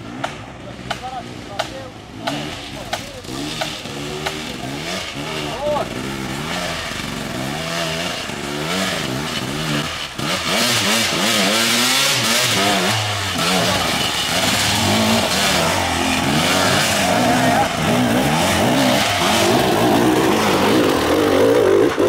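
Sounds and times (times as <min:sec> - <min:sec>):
motorcycle engines revving: 0:00.0 - 0:22.0.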